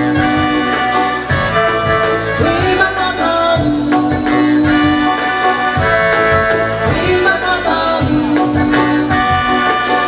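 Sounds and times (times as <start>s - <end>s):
live reggae band playing: 0.0s - 10.0s.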